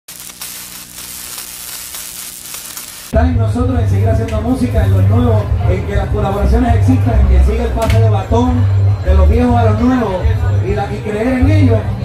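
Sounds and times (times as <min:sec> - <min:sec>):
electric static crackling hiss: 0:00.0 - 0:03.2.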